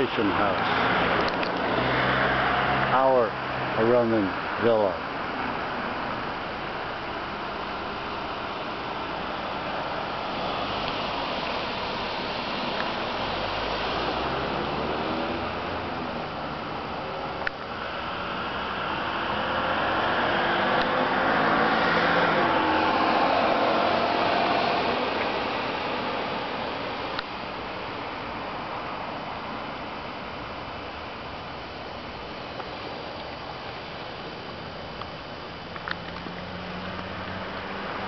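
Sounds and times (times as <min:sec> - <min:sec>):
cars passing: 0:00.0 - 0:38.0
steady background noise: 0:00.0 - 0:38.0.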